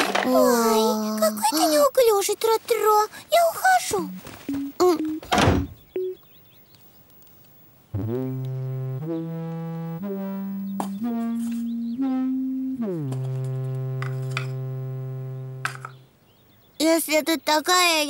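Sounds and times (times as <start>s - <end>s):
held musical note climbing: 3.9s - 5.4s, 8.0s - 16.0s
door slamming shut: 5.2s - 5.8s.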